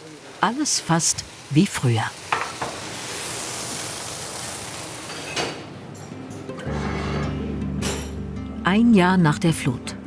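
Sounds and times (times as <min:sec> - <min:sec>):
food frying sizzle: 0:00.0 - 0:06.6.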